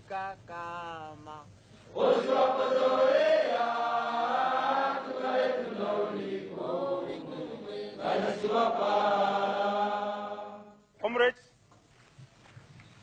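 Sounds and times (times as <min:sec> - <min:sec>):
group chanting in long notes: 0:01.9 - 0:10.8.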